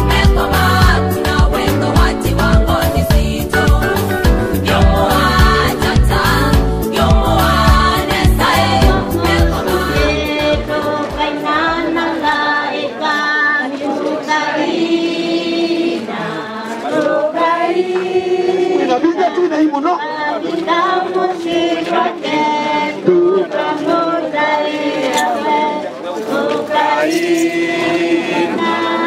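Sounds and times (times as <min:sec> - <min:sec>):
bass beat: 0:00.0 - 0:10.8
choir singing a slow hymn: 0:00.0 - 0:19.0, 0:20.0 - 0:29.0.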